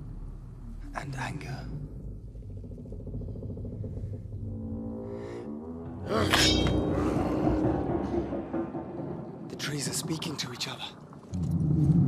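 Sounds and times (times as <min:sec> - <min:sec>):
deep groaning creaking rumble: 0:00.0 - 0:12.0.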